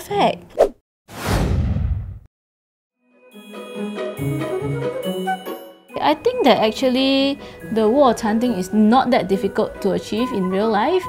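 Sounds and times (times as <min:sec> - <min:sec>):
whoosh sound effect: 0:00.6 - 0:02.3.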